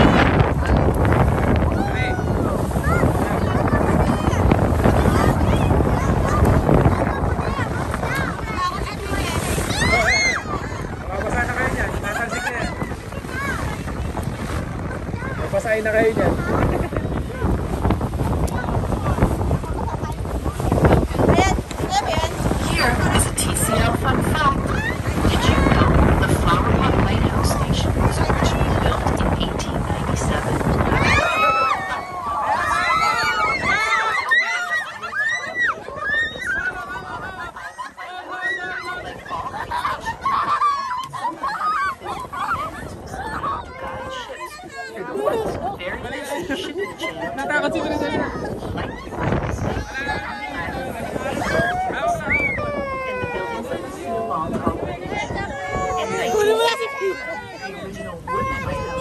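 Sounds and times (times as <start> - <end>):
boat engine rumble: 0.0 - 59.0
wind buffeting microphone: 0.0 - 59.0
girls squealing with laughter: 31.0 - 43.7.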